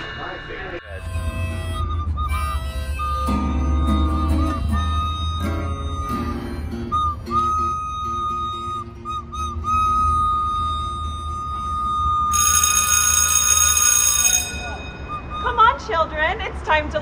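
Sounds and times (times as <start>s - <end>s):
recorder note with trills: 0.8s - 16.0s
strummed acoustic guitar: 1.0s - 9.6s.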